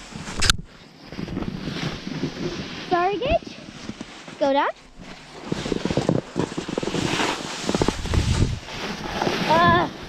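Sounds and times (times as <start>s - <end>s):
snowboard scraping over snow: 0.0s - 10.0s.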